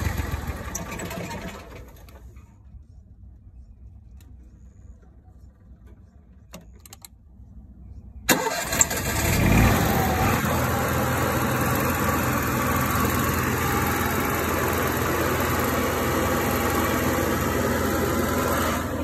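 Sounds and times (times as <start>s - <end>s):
generator starting and running: 0.0s - 2.4s, 8.3s - 19.0s.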